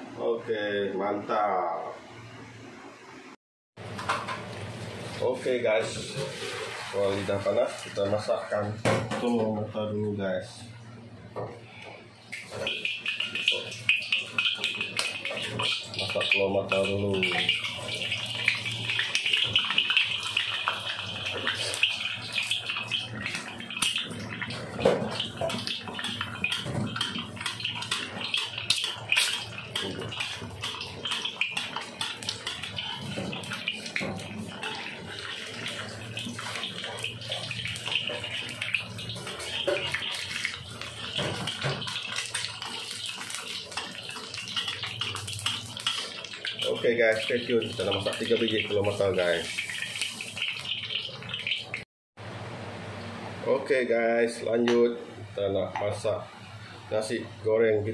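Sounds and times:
egg sizzling in hot oil: 0:12.3 - 0:51.8.

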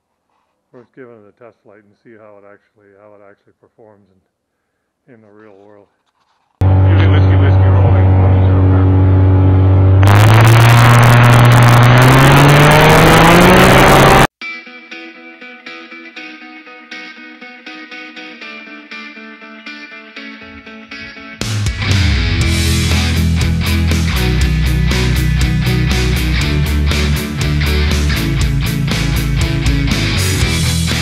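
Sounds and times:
guitar-driven background music: 0:06.6 - 0:31.0.

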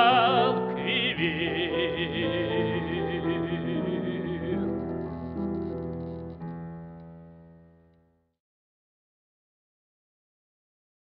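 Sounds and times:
operatic tenor singing: 0:00.0 - 0:05.0
piano accompaniment: 0:00.0 - 0:08.2.

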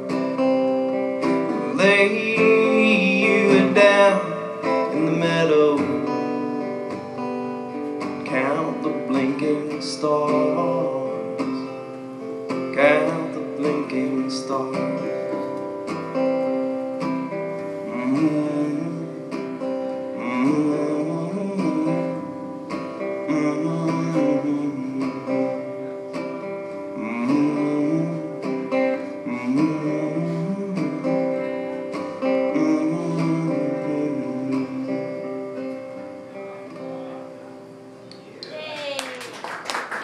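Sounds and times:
acoustic guitar strumming: 0:00.0 - 0:38.6.

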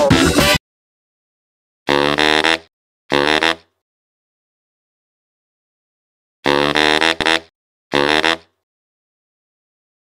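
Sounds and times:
baritone saxophone funk stabs: 0:01.9 - 0:03.7, 0:06.4 - 0:08.6.

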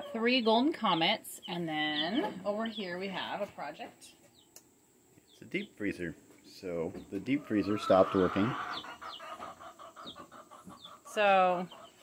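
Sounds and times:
chicks peeping softly: 0:00.0 - 0:12.0.

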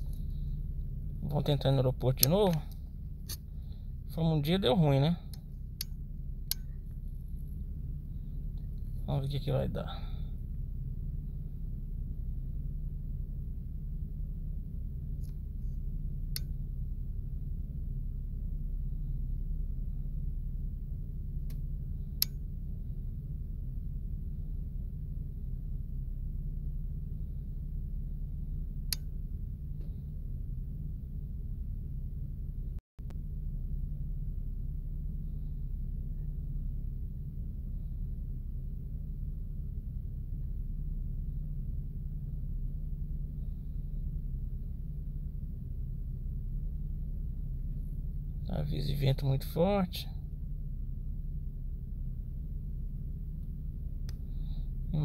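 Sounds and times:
low rumble and hum: 0:00.0 - 0:55.0.

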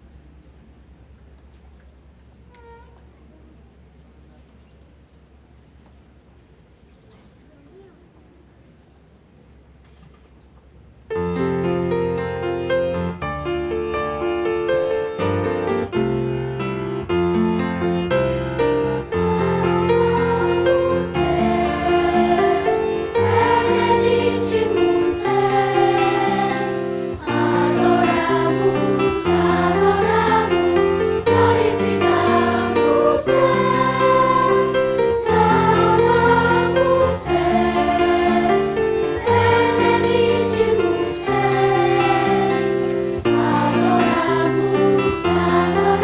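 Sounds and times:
accompanying chords: 0:11.2 - 0:46.0
children's choir singing a hymn: 0:17.3 - 0:46.0.

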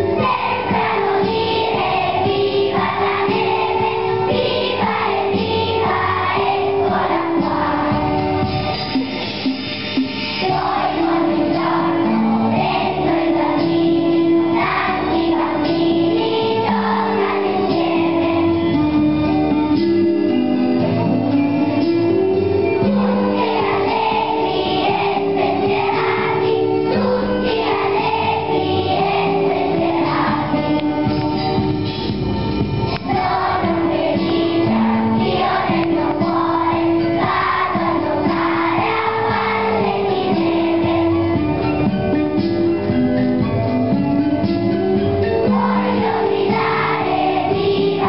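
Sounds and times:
children's choir singing: 0:00.0 - 0:19.3, 0:22.8 - 0:31.6, 0:32.9 - 0:42.0, 0:45.0 - 0:48.0.

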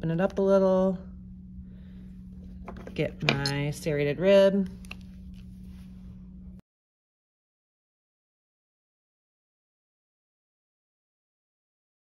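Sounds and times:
low room hum: 0:00.0 - 0:06.6.

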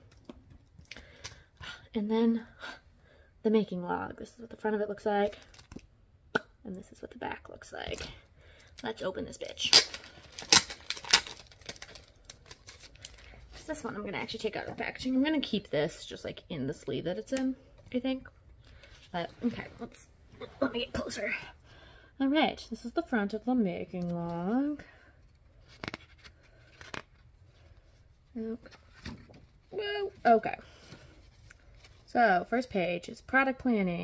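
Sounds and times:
packaging crackling and crinkling: 0:09.4 - 0:13.6
booklet handling noise: 0:25.6 - 0:27.8.

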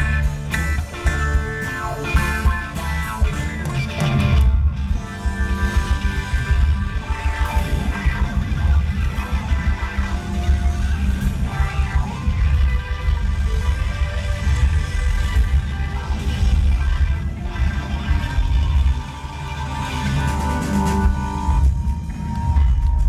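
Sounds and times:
bass guitar: 0:00.0 - 0:23.0
drum kit: 0:00.0 - 0:23.0
electric guitars: 0:00.0 - 0:23.0.

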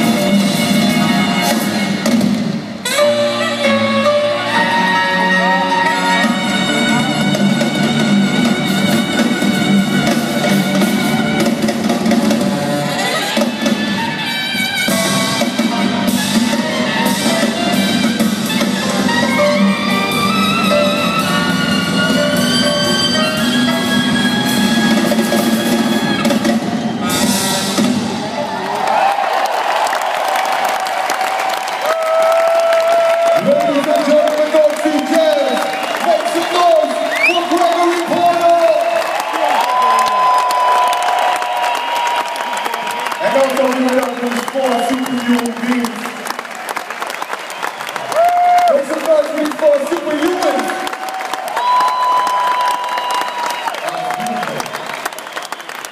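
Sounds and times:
live jazz band playing: 0:00.0 - 0:28.3
crowd applauding and cheering: 0:00.0 - 0:55.9.

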